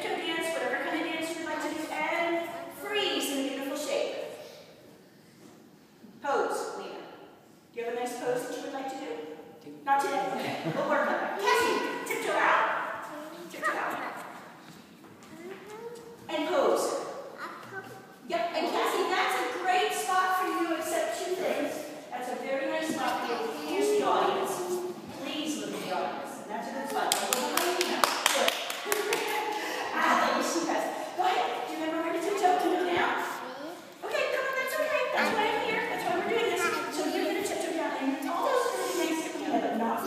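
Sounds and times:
voices talking in a large room: 0.0 - 40.0.

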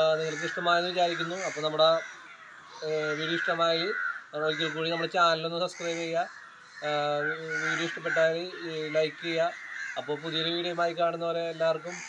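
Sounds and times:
man talking: 0.0 - 2.0, 2.8 - 12.0
birds calling: 0.0 - 12.0.

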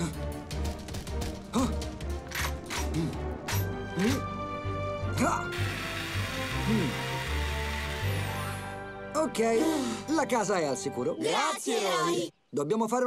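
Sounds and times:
cartoon action music: 5.1 - 9.0
fire hose spraying hiss: 5.5 - 8.7.

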